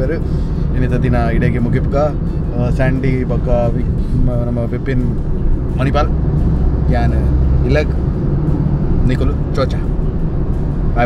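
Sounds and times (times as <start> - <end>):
engine and road rumble inside car: 0.0 - 11.0.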